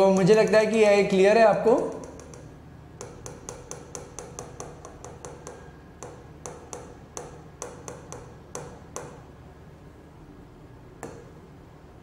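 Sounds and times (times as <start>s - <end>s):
sharp light clicks of screen taps: 1.9s - 3.2s.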